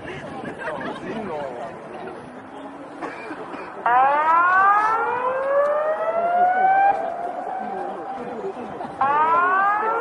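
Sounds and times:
warning siren rising in pitch: 3.9 - 8.2, 9.0 - 10.0.

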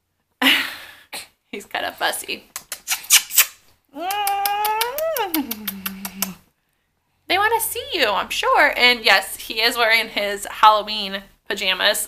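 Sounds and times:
rapid lip clicks: 2.5 - 6.4
woman humming: 3.9 - 6.4.

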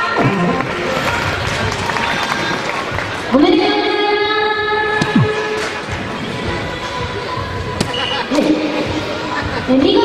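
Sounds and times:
hall background noise: 0.0 - 10.0.

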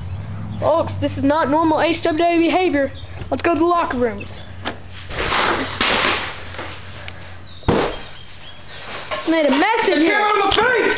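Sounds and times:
crashing bang: 5.1 - 6.5, 7.7 - 8.1
sharp bang with low thud: 7.6 - 8.2.

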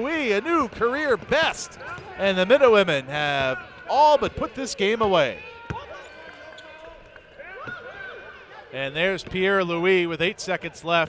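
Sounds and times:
faint voices of players and crowd: 0.0 - 11.0.

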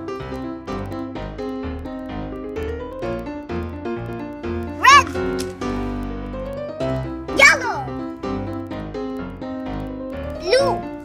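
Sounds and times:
light children's piano music: 0.0 - 11.0.

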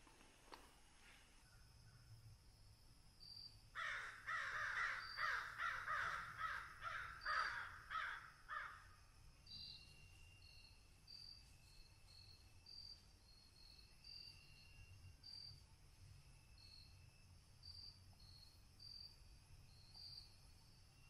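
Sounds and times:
crow cawing: 3.8 - 8.9
faint high chirps: 9.4 - 21.0.

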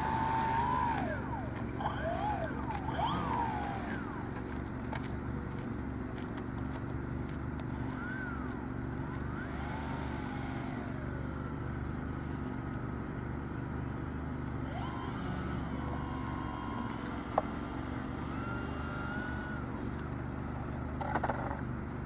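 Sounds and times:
small electric motor whining: 0.0 - 5.6, 6.6 - 21.6.

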